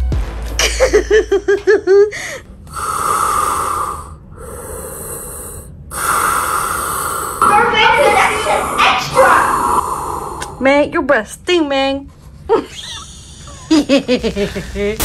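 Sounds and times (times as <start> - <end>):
hissing mechanical respirator breaths: 2.2 - 10.6.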